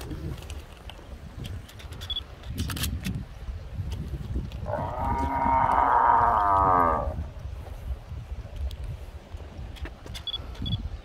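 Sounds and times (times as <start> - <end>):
cow mooing: 4.7 - 7.2.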